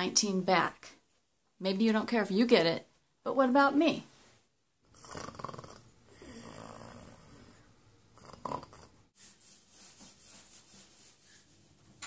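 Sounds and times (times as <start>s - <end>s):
woman snoring: 4.8s - 9.0s.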